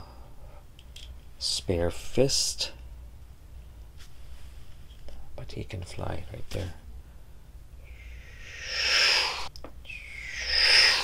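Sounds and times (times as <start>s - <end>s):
breathy mouth whooshes: 7.8s - 11.0s.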